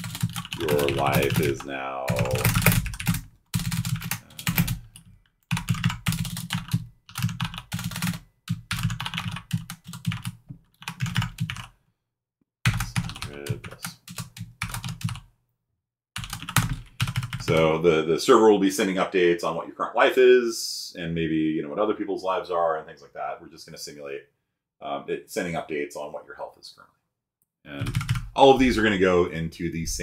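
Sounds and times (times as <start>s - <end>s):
rapid keyboard typing: 0.0s - 11.7s, 12.6s - 15.3s, 16.2s - 17.7s, 27.7s - 28.4s.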